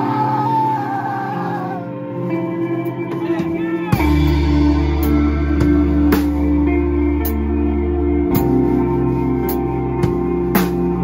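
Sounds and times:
high wavering feedback squeal: 0.0 - 3.0
distorted electric guitar chord: 0.0 - 11.0.

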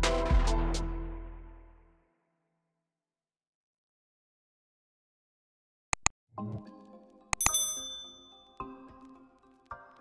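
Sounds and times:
light background music: 6.4 - 10.0
mouse clicks: 7.4 - 7.6
bright bell ding: 7.4 - 8.6.

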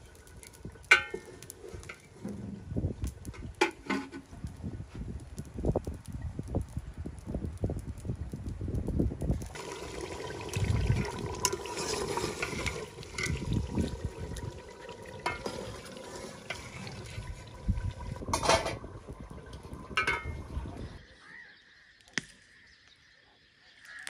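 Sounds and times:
curry bubbling and sizzling: 0.0 - 21.0
ladle scraping pot: 10.4 - 20.6.

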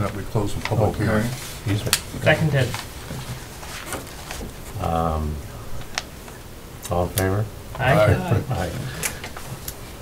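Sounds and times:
low room murmur: 0.0 - 10.0
man saying um: 7.8 - 9.0.

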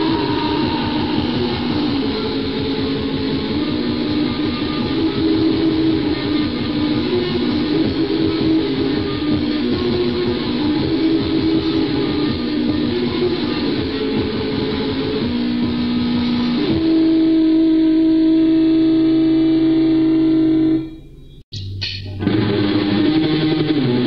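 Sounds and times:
distorted electric guitar riffing: 0.0 - 24.0.

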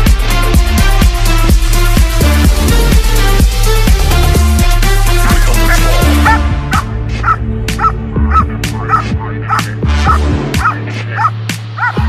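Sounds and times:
electronic music with bass: 0.0 - 12.0
dog barking sharply: 5.3 - 12.0.

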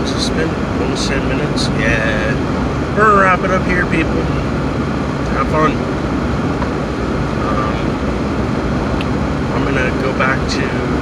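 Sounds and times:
road and engine noise in car cabin: 0.0 - 11.0.

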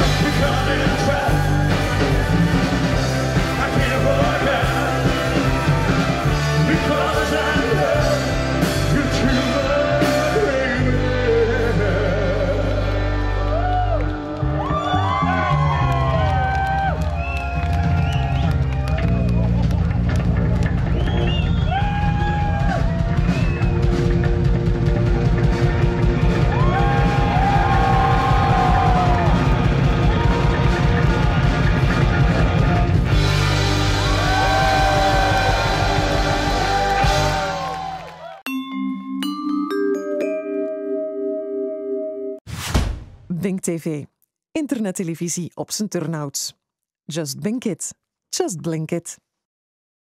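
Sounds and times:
man singing lead vocals: 0.0 - 2.1, 3.4 - 5.4, 6.2 - 13.1
drums steady beat: 0.0 - 12.2, 19.9 - 37.7
live rock band playing: 0.0 - 14.4, 17.6 - 37.8.

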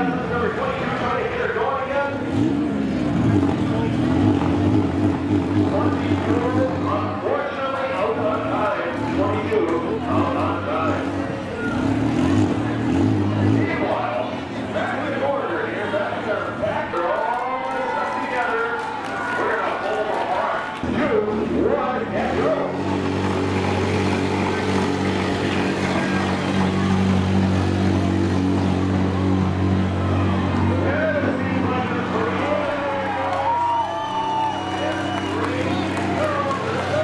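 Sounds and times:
vehicle engines running under load: 0.0 - 37.0.

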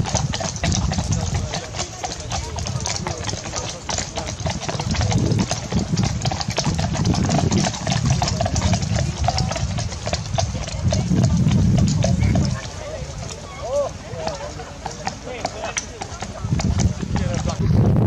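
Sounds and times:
horse hooves on grass: 0.0 - 18.0
low rumble: 4.8 - 12.6, 16.6 - 18.0.

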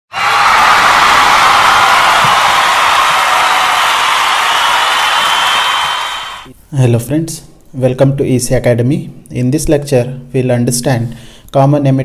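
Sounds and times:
crowd cheering and screaming: 0.1 - 6.5.

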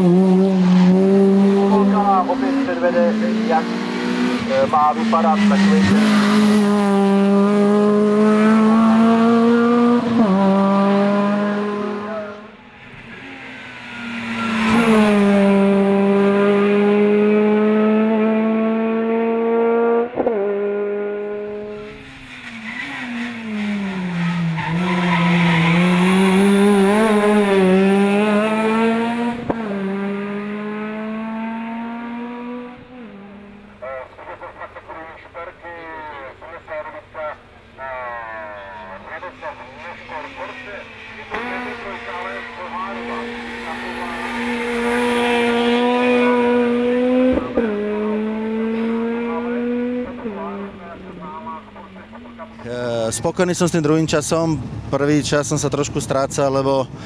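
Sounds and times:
race car engine at high revs: 0.0 - 57.0.

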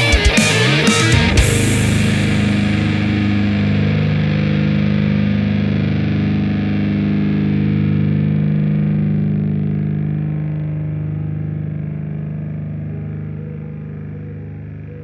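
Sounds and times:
distorted electric guitar chord: 0.0 - 15.0.

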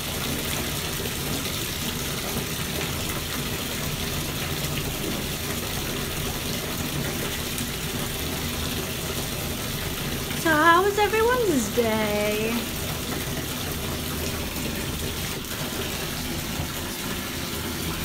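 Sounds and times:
bathtub tap running: 0.0 - 18.0.

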